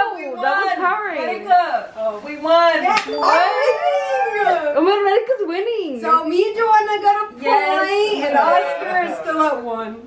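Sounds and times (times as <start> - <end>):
women whooping and squealing: 3.1 - 4.9.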